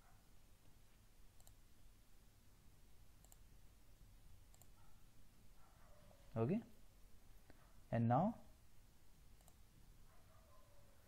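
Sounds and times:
faint computer mouse clicks: 1.4s - 1.6s, 3.2s - 3.4s, 4.5s - 4.8s, 9.4s - 9.6s.

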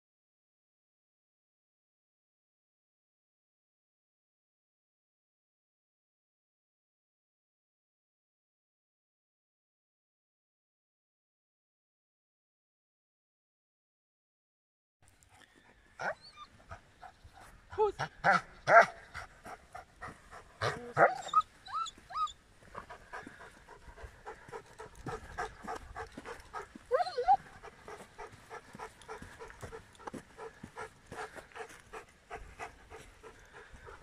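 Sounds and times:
dog panting: 15.3s - 34.0s.

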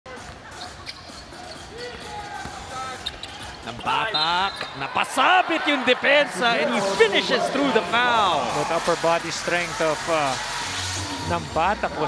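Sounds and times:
sneakers squeaking on floor: 0.1s - 4.8s
crowd murmur: 4.8s - 12.0s.

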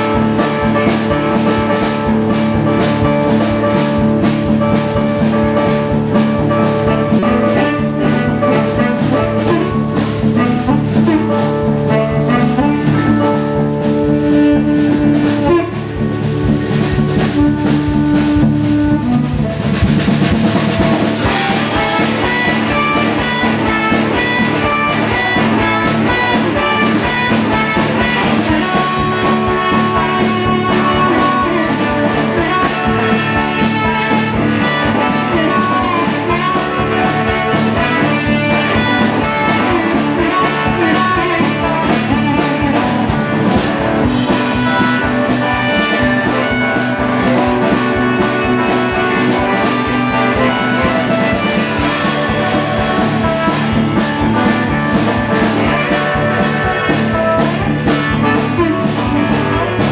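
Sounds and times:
amplified harmonica: 0.0s - 59.9s
drum kit beat: 0.0s - 59.9s
electric guitar: 0.0s - 59.9s.

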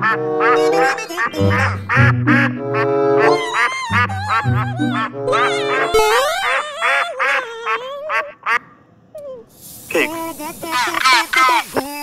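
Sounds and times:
bouncy children's music: 0.0s - 6.4s
cartoon duck quacks: 10.7s - 12.0s.

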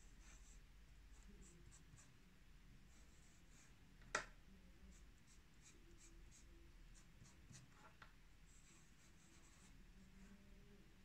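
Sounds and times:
fountain pen scratching on paper: 5.2s - 10.4s.

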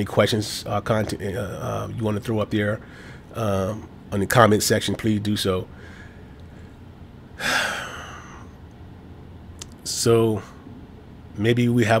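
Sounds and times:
man breathing into microphone: 2.8s - 3.3s, 5.7s - 6.8s.

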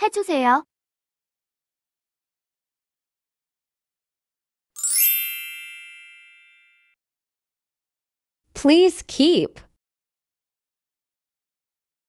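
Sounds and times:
bright chime ringing: 4.8s - 7.0s.

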